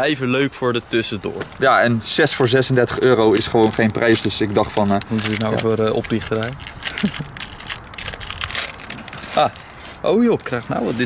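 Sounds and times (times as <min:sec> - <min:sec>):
foil pouch crinkling: 0:02.1 - 0:11.0.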